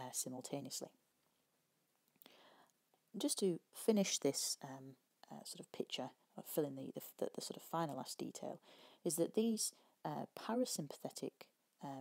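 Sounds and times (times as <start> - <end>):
soft breath: 2.2 - 2.8, 8.6 - 9.1.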